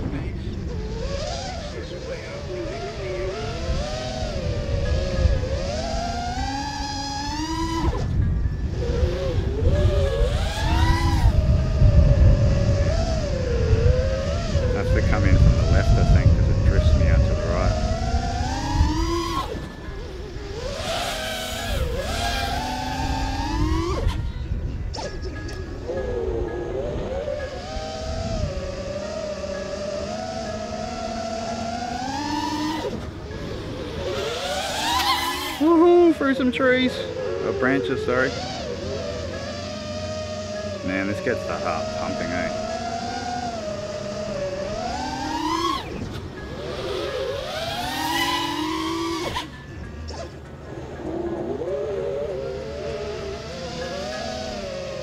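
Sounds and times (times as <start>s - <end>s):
quadcopter motors whining: 0.0s - 55.0s
wind rumble on microphone: 0.0s - 55.0s.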